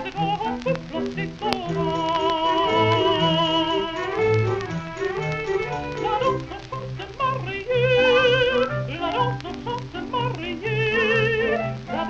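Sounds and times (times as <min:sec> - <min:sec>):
woman singing with vibrato: 0:00.0 - 0:04.6, 0:05.4 - 0:12.0
orchestral accompaniment: 0:01.8 - 0:06.5.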